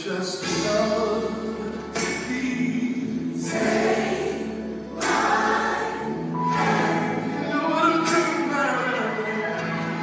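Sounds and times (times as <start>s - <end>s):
gospel choir singing: 0.4s - 10.0s.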